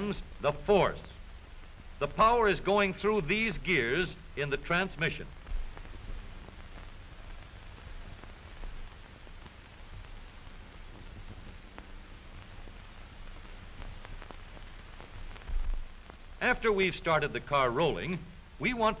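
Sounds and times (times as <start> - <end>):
faint crackles: 0.0 - 19.0
film soundtrack hiss and hum: 0.0 - 19.0.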